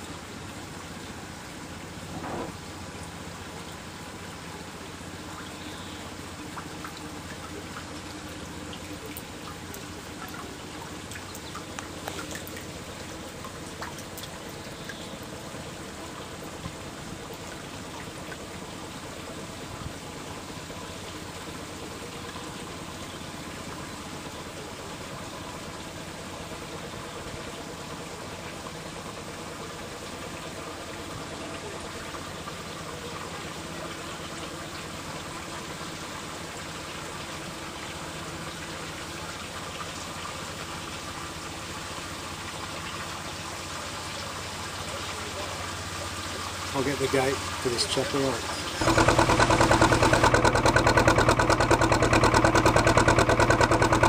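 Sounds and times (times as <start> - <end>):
boat engine humming: 0.0 - 54.0
water rushing: 0.0 - 54.0.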